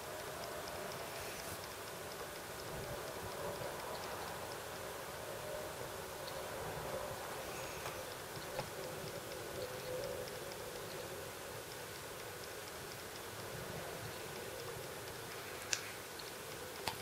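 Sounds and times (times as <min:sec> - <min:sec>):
room noise hiss and hum: 0:00.0 - 0:17.0.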